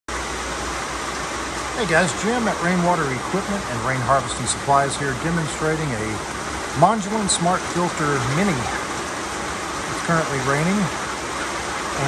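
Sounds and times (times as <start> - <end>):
falling rain: 0.1 - 12.0
water pouring from downpipe: 0.1 - 12.0.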